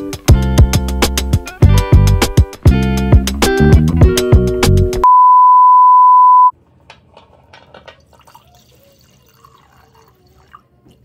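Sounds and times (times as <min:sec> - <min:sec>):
test-card beep tone: 0:05.0 - 0:06.5
wine pouring into glass: 0:08.0 - 0:11.0.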